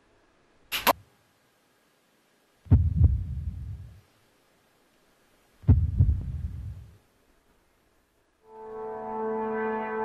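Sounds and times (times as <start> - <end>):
deep booming bass hits: 2.7 - 4.0, 5.7 - 6.9.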